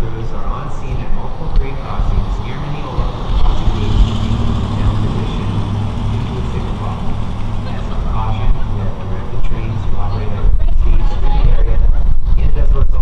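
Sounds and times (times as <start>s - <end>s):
vehicle running hum: 0.0s - 13.0s.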